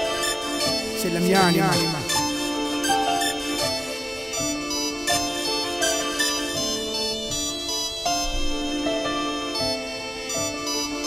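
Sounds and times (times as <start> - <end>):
hip hop instrumental beat: 0.0 - 11.0.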